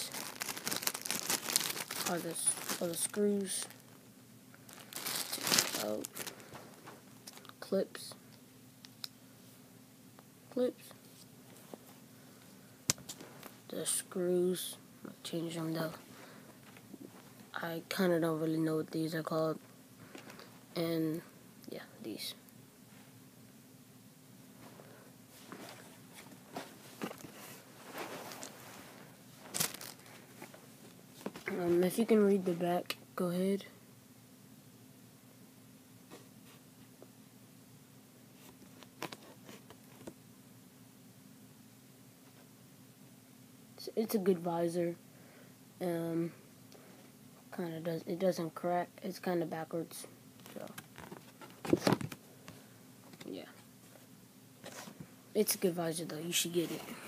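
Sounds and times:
plastic bag crinkling: 0.0 - 4.0, 4.7 - 7.5, 26.9 - 30.6.

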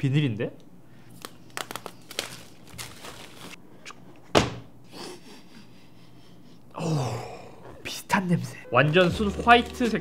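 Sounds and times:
plastic wrapping crinkling: 1.1 - 3.6.

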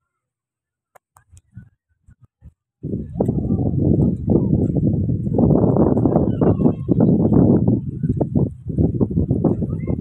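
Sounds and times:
footsteps on sand: 2.4 - 10.0.

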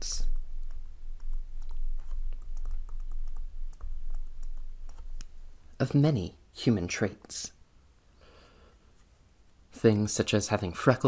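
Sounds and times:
low hum: 0.0 - 5.8.

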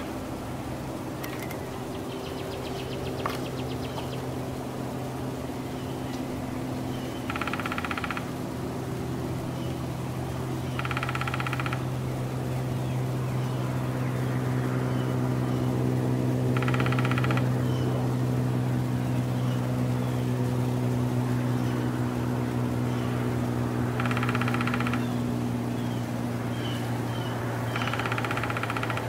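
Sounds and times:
low mechanical drone: 0.0 - 29.0
woodpecker drumming: 1.2 - 4.4, 6.9 - 8.4, 10.6 - 12.2, 16.5 - 17.8, 23.9 - 26.0, 26.6 - 29.0
short high bird calls: 24.0 - 29.0.

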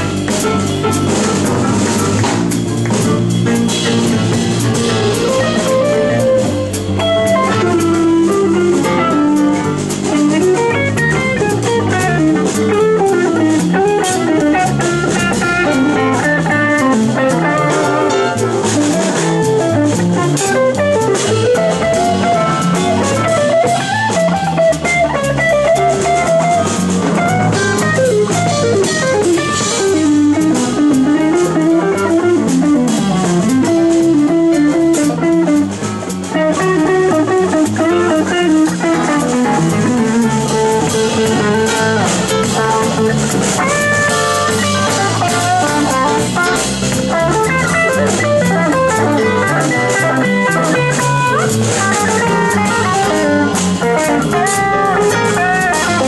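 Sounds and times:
drum kit: 0.0 - 56.0
electric bass: 0.0 - 56.0
electric guitar lead lines: 0.0 - 56.0.

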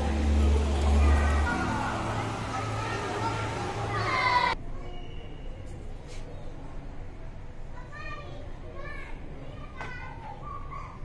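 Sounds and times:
busy background noise: 0.0 - 11.0.

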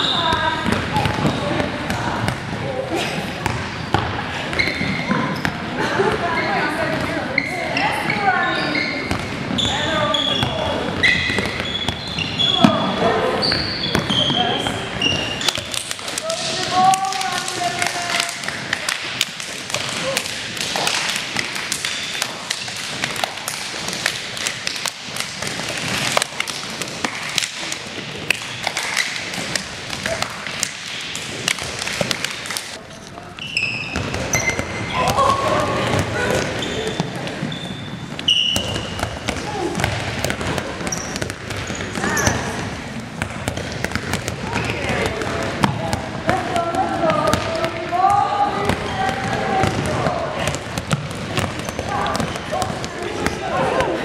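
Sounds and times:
balls bouncing on gym floor: 0.0 - 54.0
players chatting: 44.3 - 54.0.

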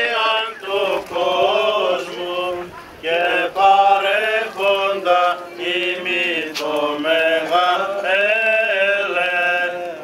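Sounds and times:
voices singing liturgical chant: 0.0 - 10.0.

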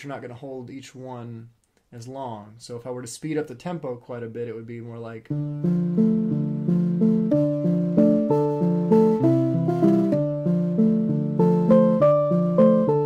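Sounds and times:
electronic keyboard melody: 5.3 - 13.0.

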